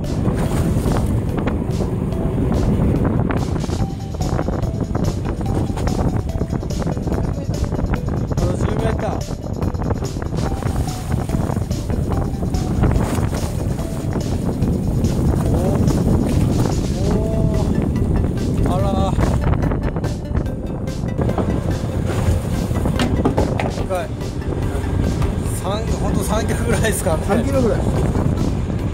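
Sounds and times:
boat engine rumble: 0:00.0 - 0:28.9
wind buffeting microphone: 0:00.0 - 0:28.9.

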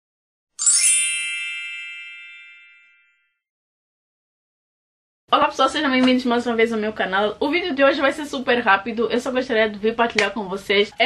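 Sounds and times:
bright chime ringing: 0:00.6 - 0:03.4.

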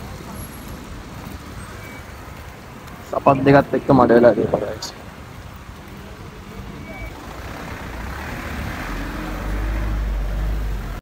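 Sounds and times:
car engine on wet road: 0:00.0 - 0:11.0
tyres on wet road: 0:00.0 - 0:11.0.

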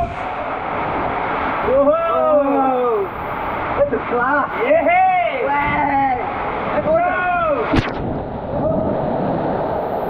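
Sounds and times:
rushing churning water: 0:00.0 - 0:10.0.

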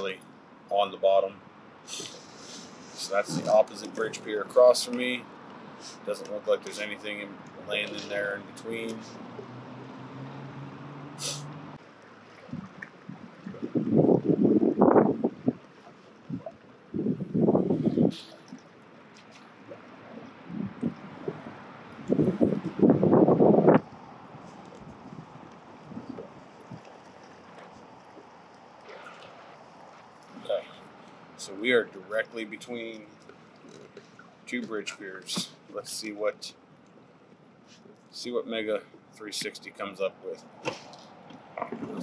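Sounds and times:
water churning around kayak hull: 0:00.0 - 0:39.2, 0:39.8 - 0:42.0
low steady hum: 0:00.0 - 0:42.0.

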